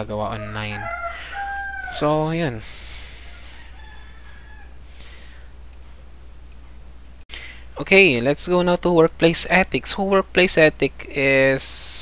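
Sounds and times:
rooster crowing faintly: 0.3 - 2.1, 3.1 - 4.9
faint clicks: 5.6 - 5.9.

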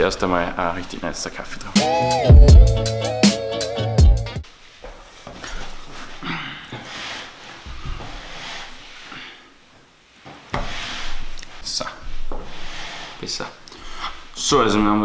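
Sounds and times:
music: 1.8 - 4.4
rustling and rubbing at a table: 4.5 - 14.5.

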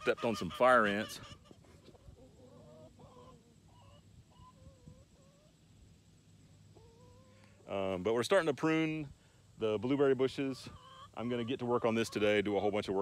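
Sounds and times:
chickens clucking: 0.0 - 13.0.

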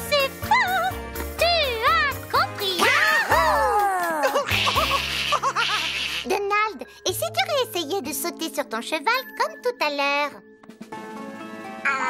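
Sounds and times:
cartoon voices giggling and laughing: 2.8 - 6.4.

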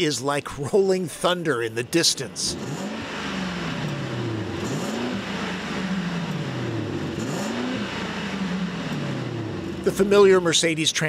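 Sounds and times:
car engine revving: 1.8 - 11.0.

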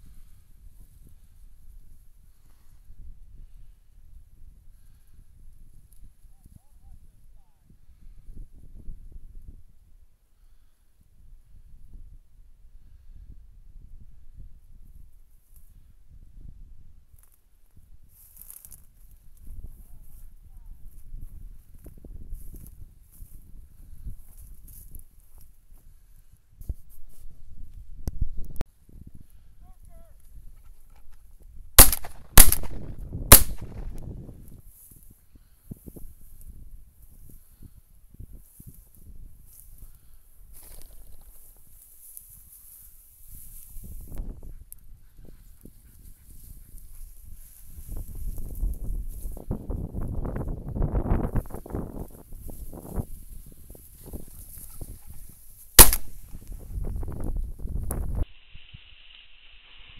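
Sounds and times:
wind on microphone: 0.0 - 10.0, 19.2 - 24.8, 43.3 - 55.5, 56.1 - 58.9
rustling through dry grass: 18.0 - 27.5, 31.8 - 59.9
shotgun shots: 31.8 - 33.9, 55.8 - 56.2.

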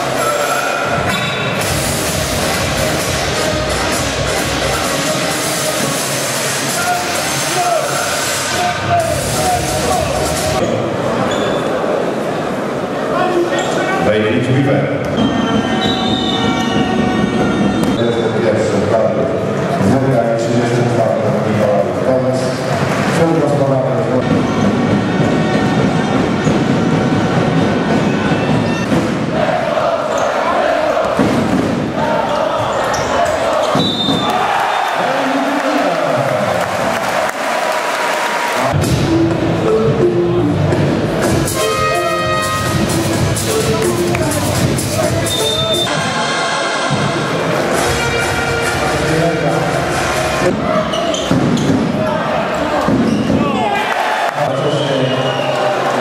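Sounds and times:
crowd din: 0.0 - 56.0
shoe squeaking on court: 10.6 - 11.7, 28.3 - 29.0, 30.1 - 31.1, 32.6 - 34.3, 50.7 - 51.8, 53.0 - 53.6
shoe squeaks: 10.6 - 11.7, 15.2 - 18.4, 28.1 - 29.0, 45.3 - 45.9, 50.7 - 51.8, 53.0 - 53.6.

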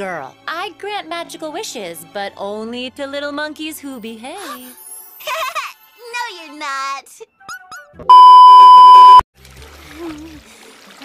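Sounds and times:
steady high beep tone: 8.1 - 9.2.

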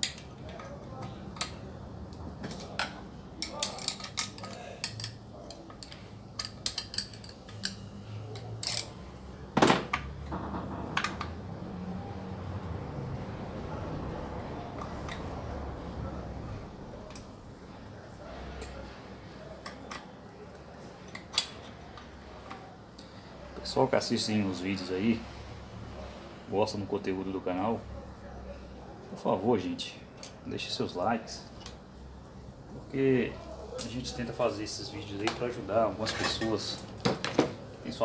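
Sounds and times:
metal tools clinking and clicking: 2.4 - 9.1
knock: 9.6 - 11.4.

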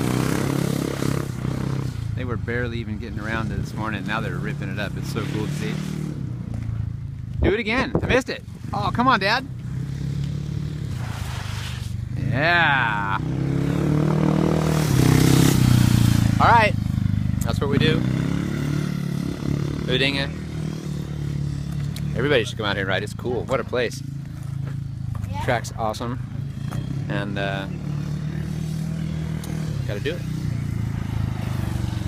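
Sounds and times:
motorcycle engine passing by: 0.0 - 7.6, 8.4 - 32.0.

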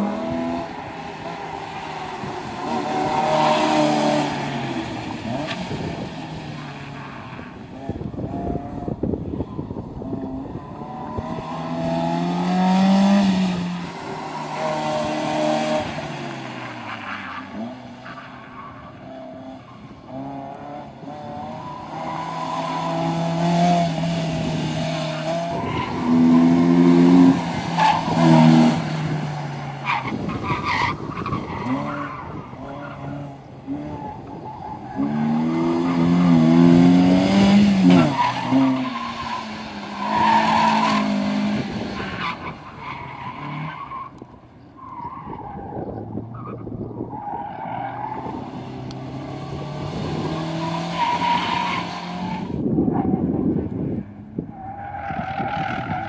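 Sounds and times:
car engines revving: 0.0 - 56.0.

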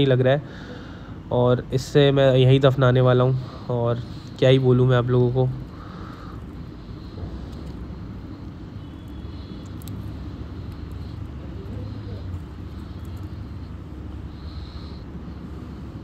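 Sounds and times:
low background rumble: 0.0 - 16.0.

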